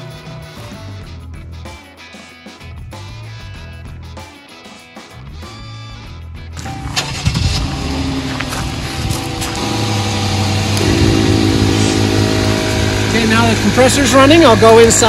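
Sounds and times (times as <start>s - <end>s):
background music: 0.0s - 15.0s
air compressor humming: 6.6s - 15.0s
car engine starting and idling: 6.6s - 15.0s.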